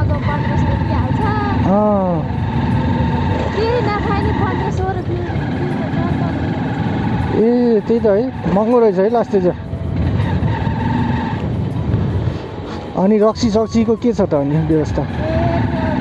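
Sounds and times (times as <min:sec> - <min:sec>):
motorcycle engine running: 0:00.0 - 0:16.0
road noise: 0:00.0 - 0:16.0.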